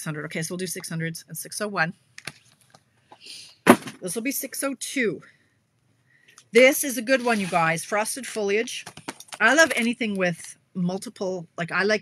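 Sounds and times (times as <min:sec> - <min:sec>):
plastic packages clicking: 0:08.7 - 0:09.9.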